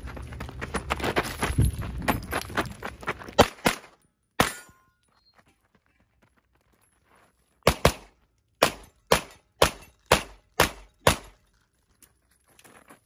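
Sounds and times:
pistol shots with echo: 7.7s - 11.4s.

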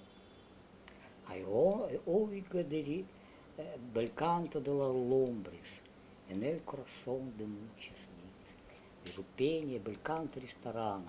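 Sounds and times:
man reciting verse: 1.3s - 8.5s, 9.1s - 11.0s.

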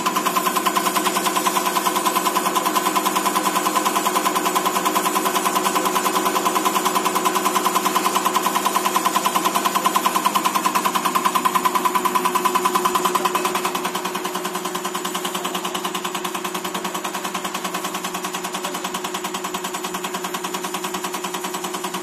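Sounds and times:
injector rapid clicking: 0.0s - 22.0s.

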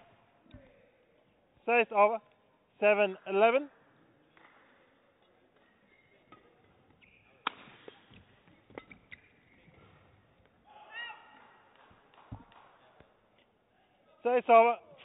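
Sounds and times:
rackets striking shuttlecock: 6.3s - 9.5s
shoe squeak: 7.0s - 7.4s, 8.8s - 10.1s.

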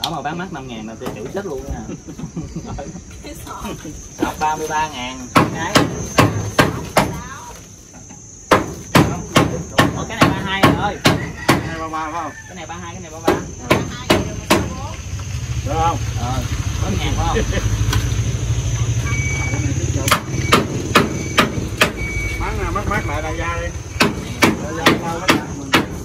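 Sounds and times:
person laughing: 1.8s - 3.1s
sharp hammering knocks: 5.3s - 7.2s, 8.4s - 11.8s, 13.2s - 14.9s, 20.0s - 22.0s, 23.9s - 26.0s.

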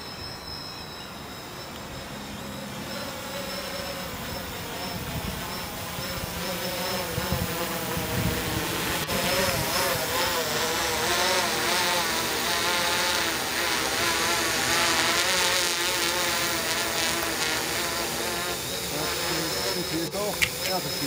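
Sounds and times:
drone motors buzzing whir: 0.0s - 21.0s.

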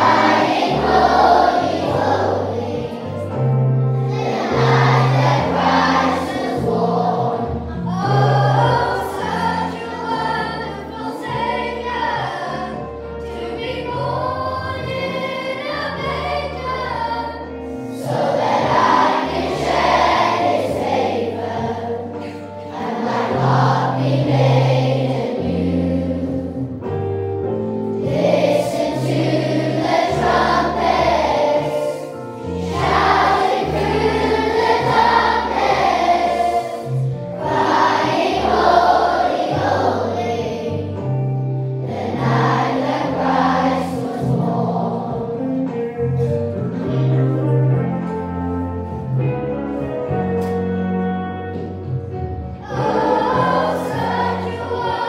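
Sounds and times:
children singing: 0.0s - 3.4s, 4.0s - 26.8s, 28.0s - 45.5s, 52.6s - 55.0s
instrumental accompaniment: 0.0s - 55.0s.

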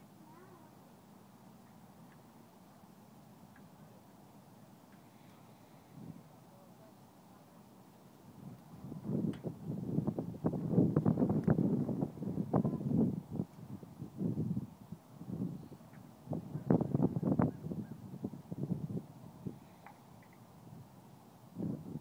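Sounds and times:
wind buffeting microphone: 8.3s - 19.8s, 21.5s - 22.0s.

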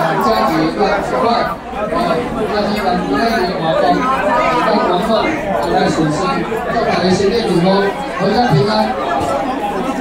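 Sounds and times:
hubbub of overlapping conversation: 0.0s - 10.0s.

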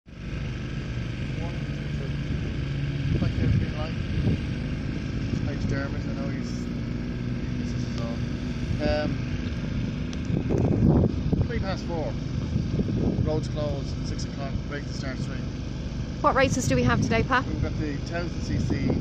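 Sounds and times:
motorcycle engine running: 0.0s - 19.0s
voices: 1.1s - 9.5s, 16.2s - 19.0s.

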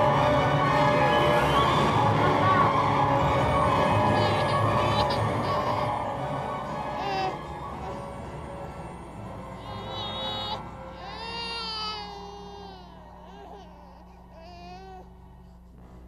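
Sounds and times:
low background music: 0.0s - 16.0s
high wavering crying voice: 3.7s - 8.1s, 9.5s - 15.1s.

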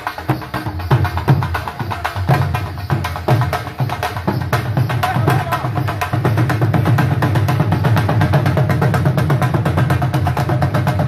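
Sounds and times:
drums in fast rhythm: 0.0s - 11.0s.

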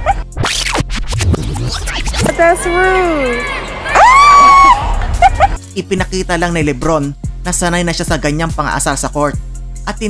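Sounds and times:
record scratch: 0.0s - 2.5s
background music beat: 0.0s - 10.0s.

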